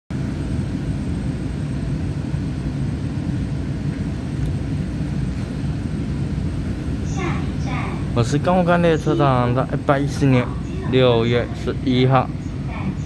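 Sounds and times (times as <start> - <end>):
train interior rumble: 0.1 - 13.0.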